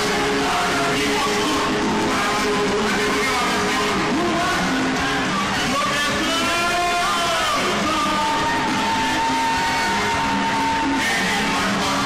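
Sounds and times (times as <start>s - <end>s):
crowd voices overlapping: 0.0s - 12.0s
music: 0.0s - 12.0s.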